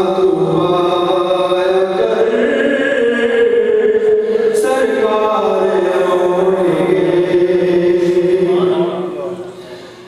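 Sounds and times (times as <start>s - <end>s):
man chanting into a microphone: 0.0s - 9.9s.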